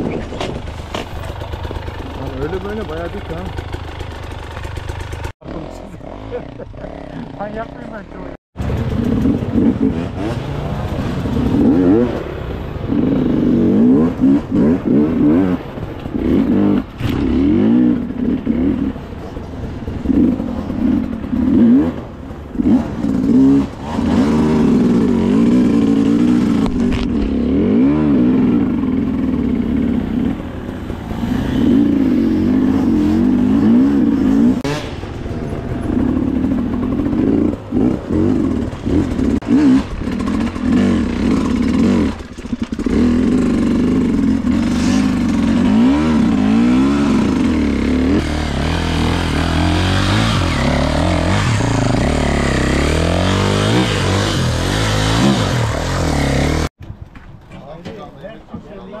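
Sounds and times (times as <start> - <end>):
dirt bike engine revving: 1.2 - 19.1, 19.9 - 56.7
second bike engine revving hard: 8.6 - 18.9, 20.0 - 35.0, 35.9 - 56.7.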